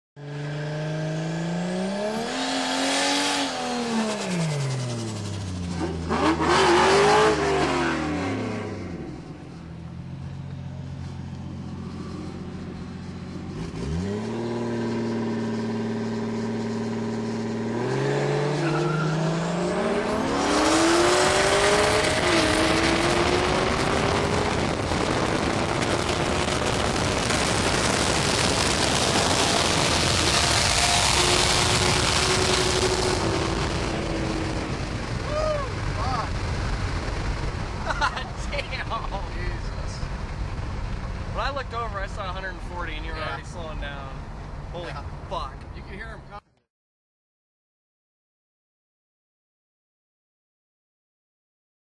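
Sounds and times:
car engines revving: 0:00.2 - 0:46.2
wind and road noise: 0:00.2 - 0:46.6.

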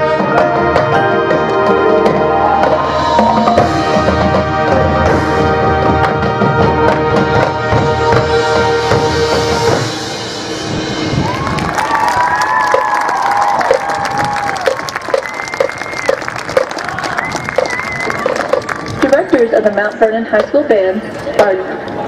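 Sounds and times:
marching band brass chord: 0:00.0 - 0:12.1
crowd applause and cheering: 0:01.0 - 0:04.4, 0:10.6 - 0:19.4
high whoops: 0:11.2 - 0:18.8.

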